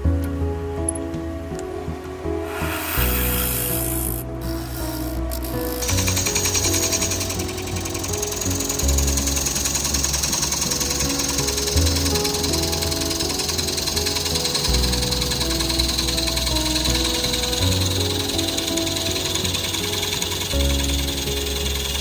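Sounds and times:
background music with bass line: 0.0s - 22.0s
gouge cutting wood on lathe: 2.4s - 22.0s.

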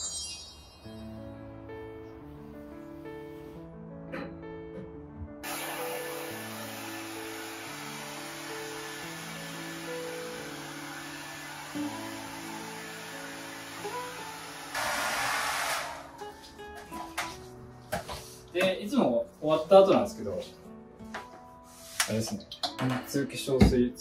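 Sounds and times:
soft background music: 0.0s - 24.0s
hair dryer blowing: 5.4s - 16.3s.

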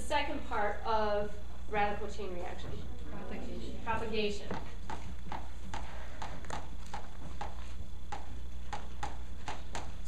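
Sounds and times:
chalk tapping on chalkboard: 4.5s - 10.0s.

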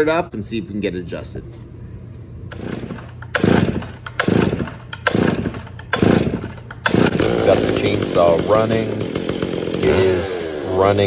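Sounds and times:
chainsaw engine revving: 2.5s - 11.0s.

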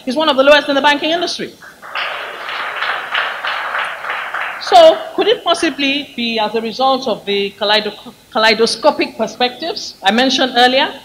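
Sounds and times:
audience applauding: 1.6s - 5.7s.

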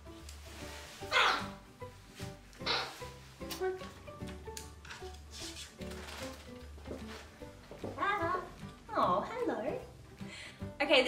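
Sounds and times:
background music: 0.0s - 11.0s
parrot squawking: 1.1s - 1.6s, 2.6s - 3.2s.

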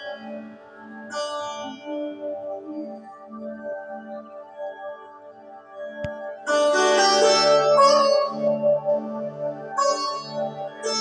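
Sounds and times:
instrumental music: 0.0s - 11.0s.

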